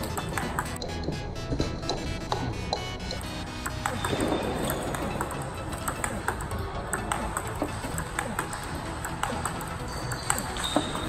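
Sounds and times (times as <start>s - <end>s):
table tennis ball clicking: 0.0s - 0.9s, 1.8s - 11.0s
background music: 0.0s - 11.0s.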